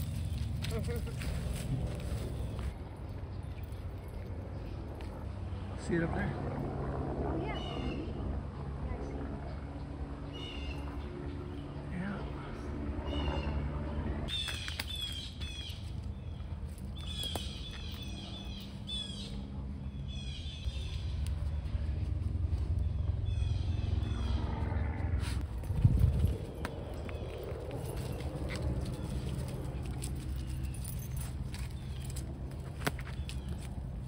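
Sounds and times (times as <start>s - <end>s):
birds chirping: 0.0s - 6.1s, 7.5s - 34.0s
steady low rumble: 0.0s - 7.4s, 15.8s - 34.0s.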